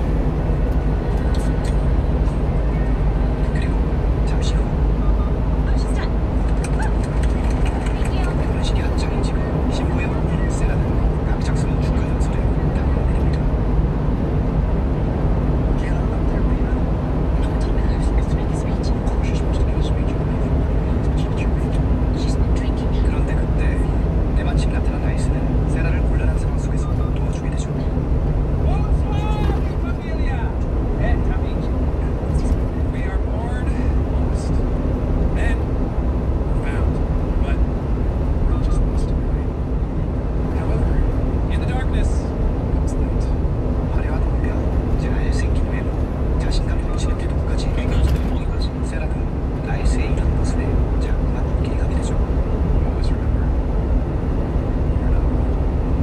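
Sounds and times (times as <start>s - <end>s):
truck road and engine rumble: 0.0s - 56.0s.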